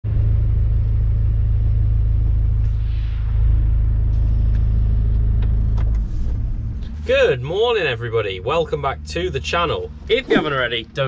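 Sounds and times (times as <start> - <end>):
diesel engine rumbling: 0.0 - 11.0.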